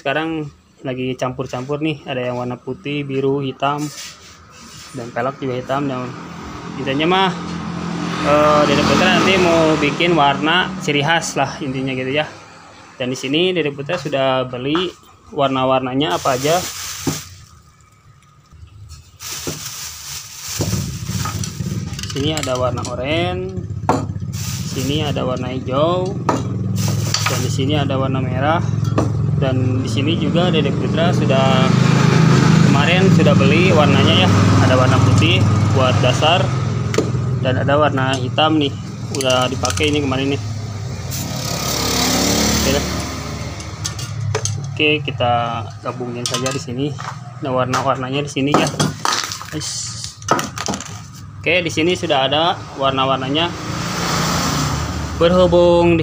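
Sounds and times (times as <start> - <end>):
engine humming: 4.3 - 48.0
plastic bag rustling: 16.0 - 17.7, 18.8 - 22.0, 24.3 - 25.1, 49.0 - 49.8
hiss: 24.3 - 25.1.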